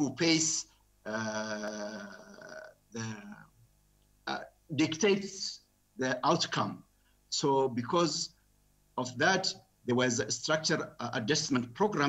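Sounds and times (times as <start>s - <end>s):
man speaking over video call: 0.0s - 3.6s, 4.3s - 8.4s, 9.0s - 12.0s.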